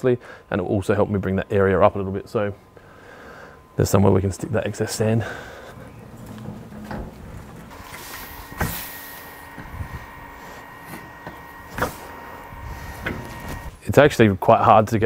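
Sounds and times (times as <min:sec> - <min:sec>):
wheelbarrow rolling over grass: 0:05.0 - 0:13.8
wheelbarrow tray knocking and rattling: 0:06.2 - 0:07.7.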